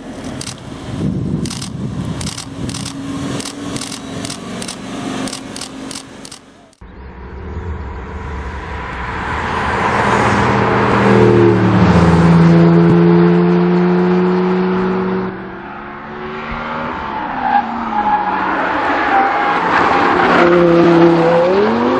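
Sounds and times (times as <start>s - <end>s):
sports car engines passing: 0.0s - 21.9s
car engine revving: 1.4s - 17.0s, 18.0s - 21.9s.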